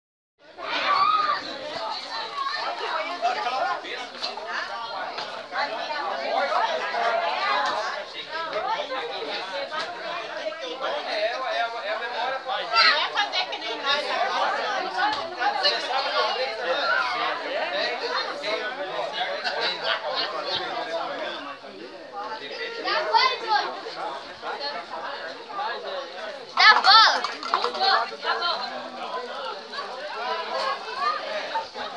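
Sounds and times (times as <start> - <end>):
crowd chatter: 0.4 - 31.9.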